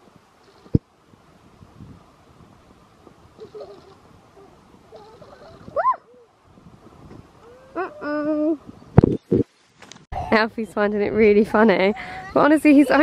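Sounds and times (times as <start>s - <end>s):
wind on microphone: 0.0s - 9.5s
child vocalizing and squealing: 3.4s - 6.3s, 7.4s - 8.6s, 10.2s - 10.4s.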